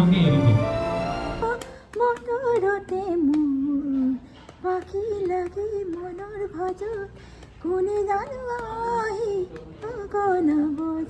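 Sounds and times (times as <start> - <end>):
elderly woman singing: 1.4 - 11.0.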